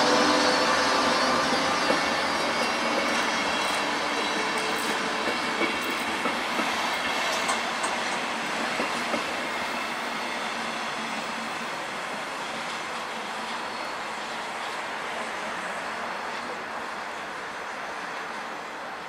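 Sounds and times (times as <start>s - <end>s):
train coaches rolling past: 0.0s - 19.0s.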